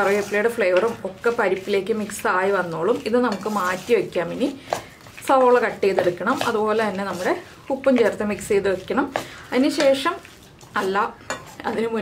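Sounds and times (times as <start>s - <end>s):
metal spoon scraping steel bowl: 0.0s - 4.4s, 9.2s - 12.0s.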